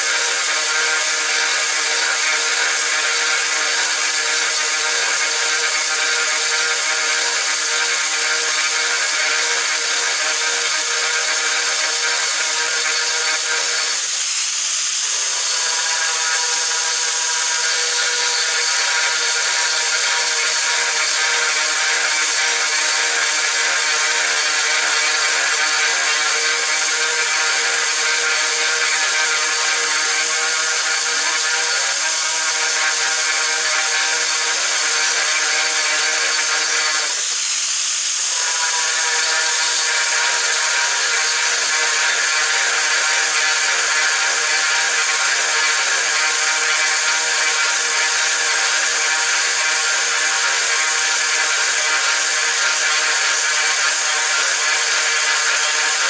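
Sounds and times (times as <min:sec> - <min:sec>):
angle grinder cutting tile: 0:00.0 - 0:56.0.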